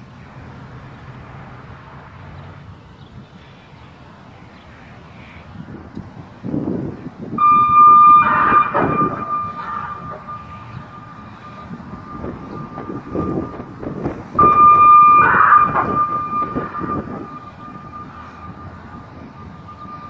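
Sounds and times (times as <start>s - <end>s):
warning siren steady high tone: 7.3s - 20.0s
loud rushing noise: 7.4s - 20.0s.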